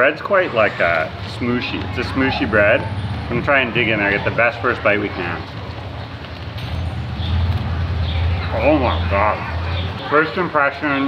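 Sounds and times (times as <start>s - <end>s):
engine hum: 0.0s - 11.0s
street traffic rumble: 0.0s - 11.0s.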